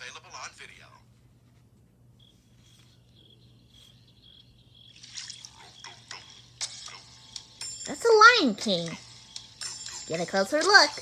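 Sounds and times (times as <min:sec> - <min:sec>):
low steady hum: 0:00.0 - 0:11.0
faint high-pitched chirp: 0:02.2 - 0:06.4.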